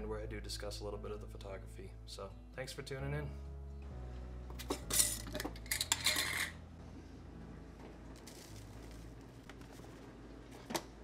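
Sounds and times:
metal jar lid clinking and scraping: 4.6 - 6.6.

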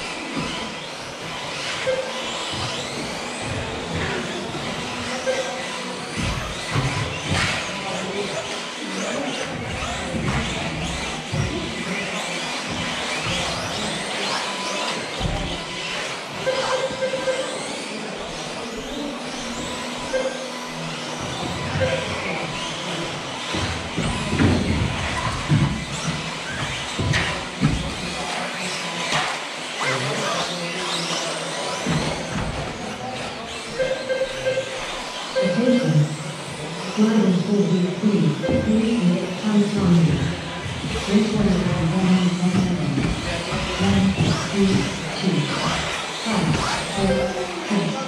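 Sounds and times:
rc car motors whining: 0.0 - 48.0.

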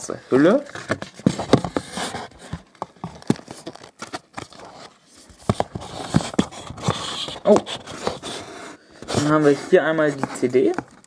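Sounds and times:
packaging rustle: 0.8 - 11.0.

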